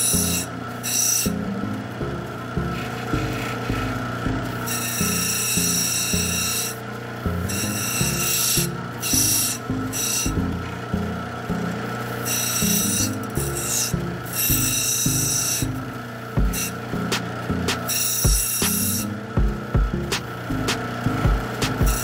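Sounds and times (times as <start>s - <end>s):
stone grinding on wet wheel: 0.0s - 1.5s, 2.6s - 10.9s, 12.0s - 16.8s, 17.6s - 19.1s
machine motor hum: 0.0s - 22.0s.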